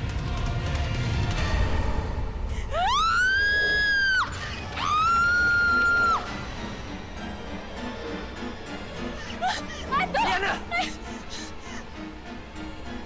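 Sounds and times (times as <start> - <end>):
dramatic background music: 0.0 - 13.0.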